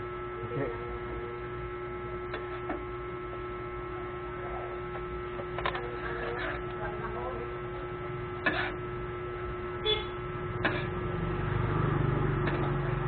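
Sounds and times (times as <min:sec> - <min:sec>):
electrical hum: 0:00.0 - 0:13.0.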